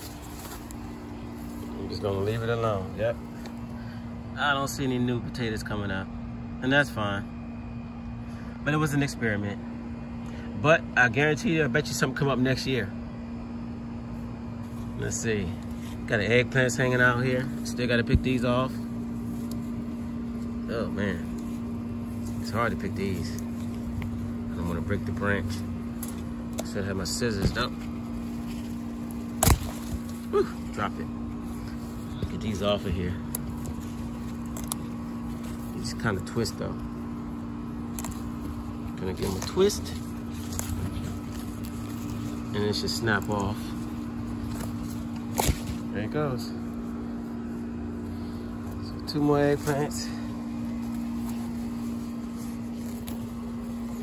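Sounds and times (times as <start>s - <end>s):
steady low hum: 0.0s - 54.0s
stem snapping: 28.6s - 30.3s, 33.2s - 35.5s, 37.9s - 38.6s, 40.3s - 42.2s, 44.4s - 45.9s.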